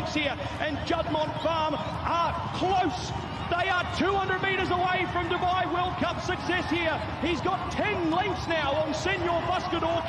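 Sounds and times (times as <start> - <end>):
man giving fast race commentary: 0.0 - 10.0.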